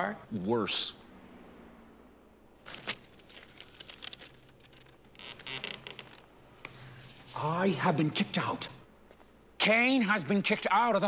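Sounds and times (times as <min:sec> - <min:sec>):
paper crinkling: 0:02.6 - 0:06.2.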